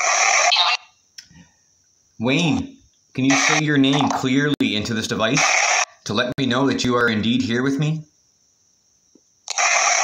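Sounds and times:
static hiss from phone speaker: 0:00.0 - 0:00.8, 0:02.4 - 0:04.6
faint high steady whine: 0:00.0 - 0:10.0.

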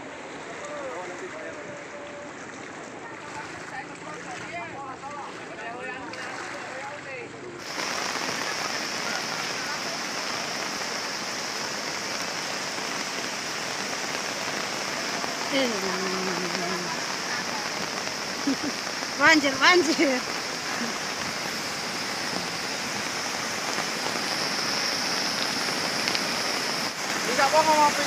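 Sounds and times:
wind: 0:00.0 - 0:28.0
faint voices: 0:00.3 - 0:12.3, 0:14.5 - 0:21.5
heavy rain falling: 0:07.6 - 0:28.0.

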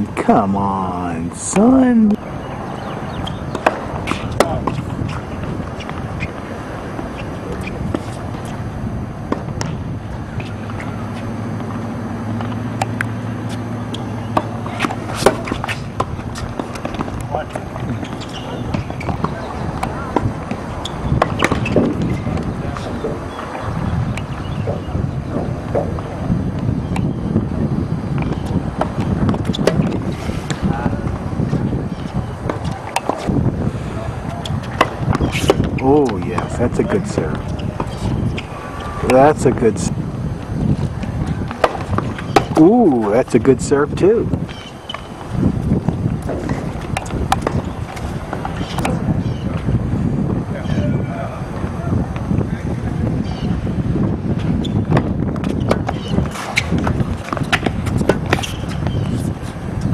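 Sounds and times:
tennis balls struck by rackets: 0:01.6 - 0:27.1, 0:28.1 - 0:49.7, 0:54.3 - 0:59.9
indistinct voices: 0:29.6 - 0:44.3.

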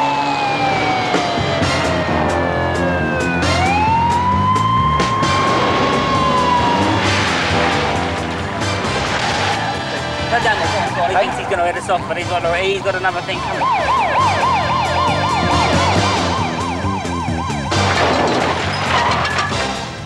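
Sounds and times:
wailing siren: 0:00.0 - 0:18.4
music with bass and drums: 0:01.1 - 0:18.2.

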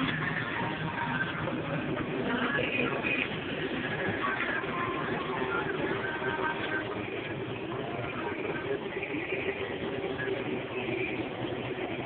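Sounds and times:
faint background music: 0:00.0 - 0:12.0
shopping cart wheels rumbling: 0:00.0 - 0:12.0
voices: 0:00.0 - 0:12.0.

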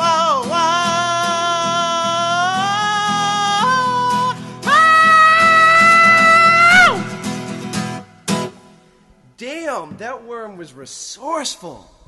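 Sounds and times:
strummed acoustic guitar: 0:00.0 - 0:09.2
person singing high note: 0:01.6 - 0:07.3.

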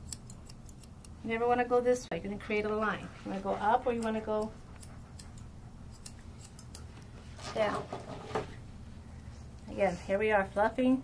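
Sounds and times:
grooming shears snipping: 0:00.0 - 0:01.2, 0:03.2 - 0:07.7.

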